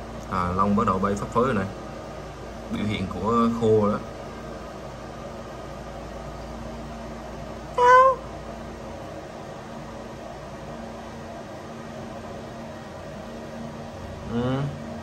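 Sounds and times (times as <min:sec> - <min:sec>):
fans humming: 0:00.0 - 0:15.0
cat meowing: 0:07.8 - 0:08.2.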